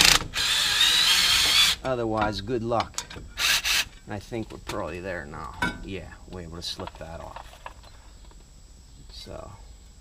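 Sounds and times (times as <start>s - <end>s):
cordless drill running: 0.0s - 1.8s, 3.4s - 3.9s.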